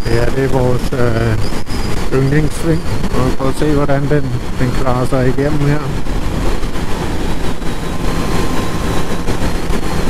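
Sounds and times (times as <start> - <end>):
motorcycle engine running: 0.0 - 10.0
wind noise on microphone: 0.0 - 10.0.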